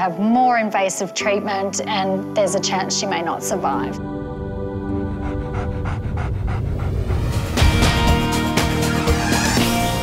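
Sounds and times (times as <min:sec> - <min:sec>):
background music: 0:00.0 - 0:10.0
dog panting quickly: 0:05.1 - 0:07.6.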